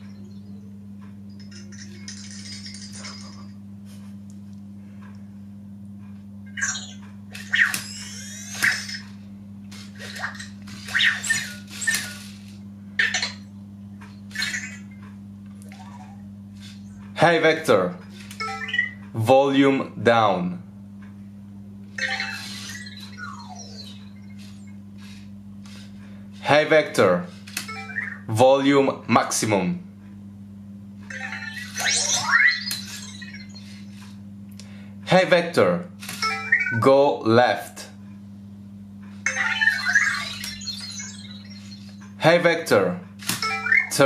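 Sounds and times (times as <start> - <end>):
falling electronic chirps: 22.0 - 25.2, 31.1 - 34.1, 39.3 - 42.2, 43.4 - 44.0.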